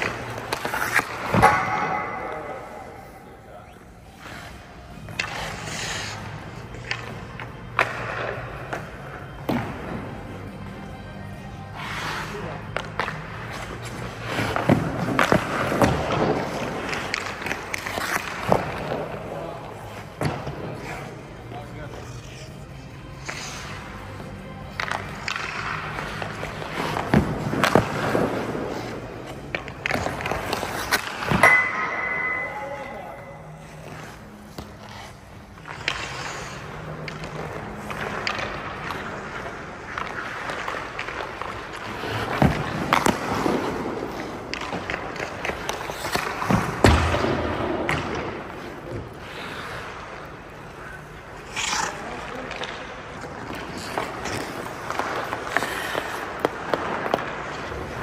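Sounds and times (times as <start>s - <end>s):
hockey stick shooting puck: 0.0s - 2.7s, 12.7s - 19.3s, 24.6s - 32.6s, 35.6s - 49.1s, 51.5s - 58.0s
pucks striking boards: 0.0s - 3.0s, 4.9s - 10.4s, 12.6s - 20.8s, 24.3s - 32.6s, 33.8s - 50.2s, 51.4s - 58.0s
faint background music: 0.0s - 58.0s
skates scraping on ice: 0.0s - 58.0s.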